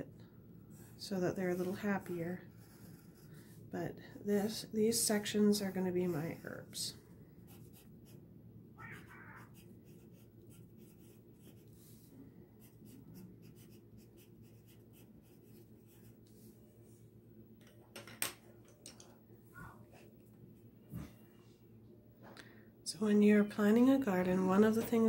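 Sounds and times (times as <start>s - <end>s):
pencil scratching on paper: 2.5s - 3.5s, 9.4s - 16.2s.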